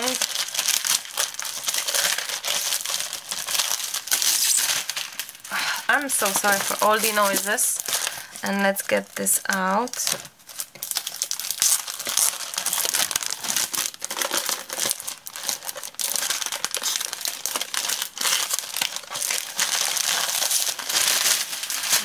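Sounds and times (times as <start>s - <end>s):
plastic wrapper crinkling: 0.0s - 22.0s.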